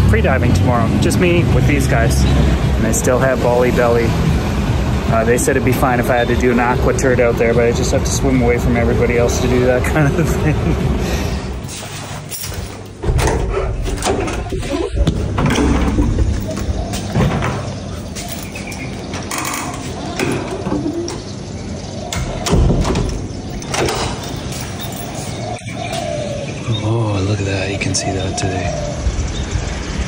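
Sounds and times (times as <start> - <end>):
knocks and thumps: 13.0 - 21.3, 22.2 - 25.4.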